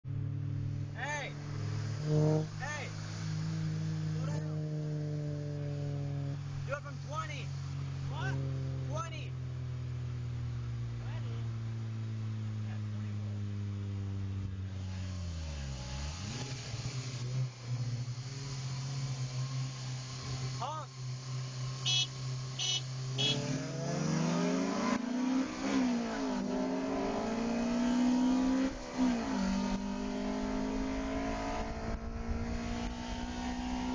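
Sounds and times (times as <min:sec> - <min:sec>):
car engine cruising: 0:00.0 - 0:33.9
wind and road noise: 0:00.0 - 0:33.9
loud held tone: 0:21.8 - 0:23.6.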